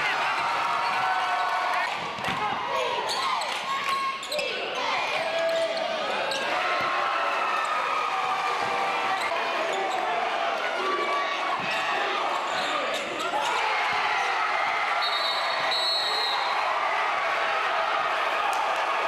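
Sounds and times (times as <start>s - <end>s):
crowd and player voices: 0.0s - 19.0s
shouts echoing in hall: 0.0s - 19.0s.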